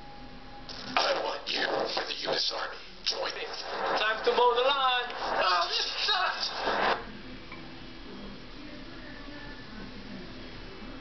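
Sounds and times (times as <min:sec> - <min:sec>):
faint steady hum: 0:00.0 - 0:11.0
person's voice: 0:01.0 - 0:07.0
breathy rush of noise: 0:02.7 - 0:07.1.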